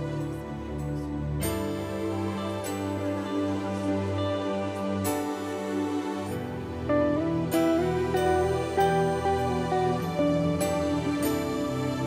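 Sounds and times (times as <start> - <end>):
held keyboard chords: 0.0 - 12.0
electric guitar: 1.4 - 12.0.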